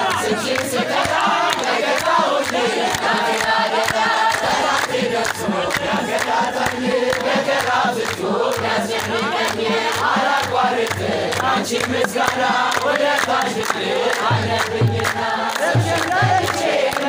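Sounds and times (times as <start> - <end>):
crowd singing a hymn: 0.0 - 17.0
rhythmic hand clapping: 0.0 - 17.0.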